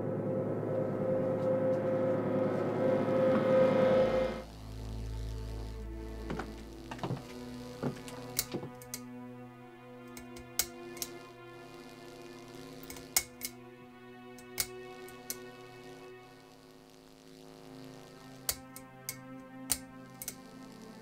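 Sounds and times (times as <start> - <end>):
low film score drone: 0.0 - 21.0.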